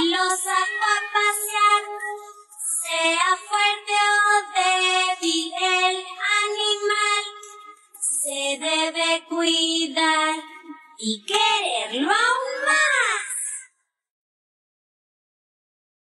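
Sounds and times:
child-like voice singing: 0:00.0 - 0:13.6.

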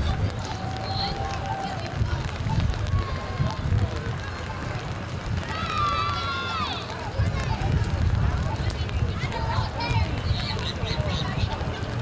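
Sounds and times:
crowd voices: 0:00.0 - 0:12.0.

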